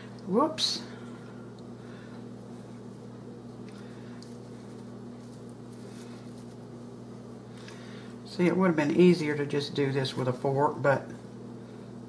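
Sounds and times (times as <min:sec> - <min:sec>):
hands handling pastry dough: 0:02.4 - 0:07.8.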